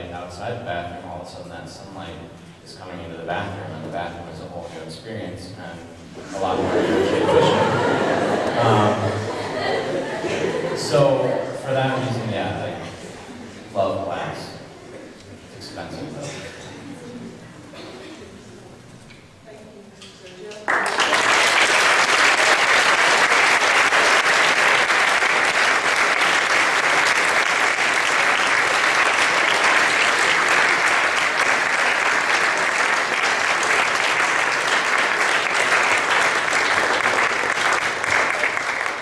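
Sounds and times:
audience applauding: 20.5s - 39.0s.

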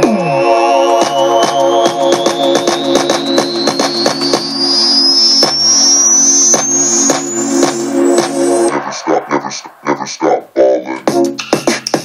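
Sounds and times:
rising synth sweep: 0.0s - 10.0s
repeating synth chord pattern: 6.9s - 8.8s.

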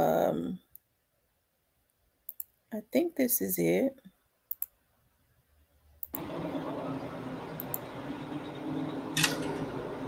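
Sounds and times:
computer mouse double click: 4.5s - 4.7s.

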